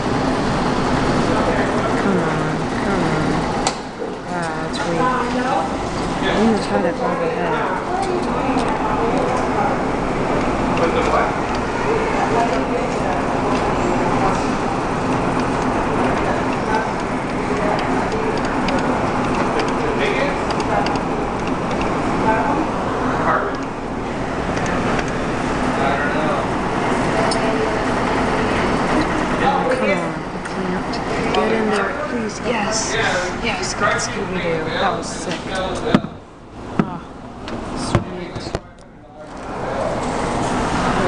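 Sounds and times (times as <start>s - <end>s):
indistinct chatter: 0.0s - 41.0s
steady low hum: 0.0s - 41.0s.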